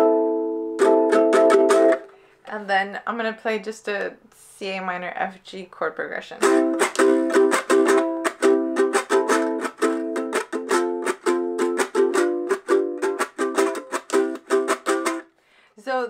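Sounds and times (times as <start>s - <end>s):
ukulele strumming with rattle: 0.0s - 2.1s, 6.4s - 15.3s.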